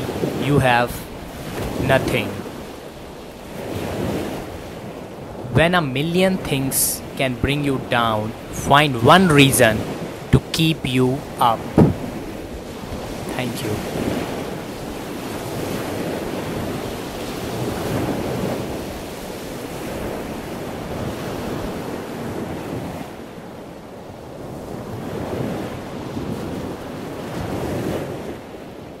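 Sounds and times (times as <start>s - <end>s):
surf washing onto beach: 0.0s - 29.0s.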